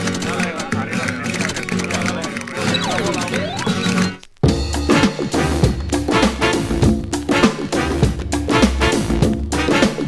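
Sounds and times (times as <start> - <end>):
vinyl record music: 0.0 - 10.0.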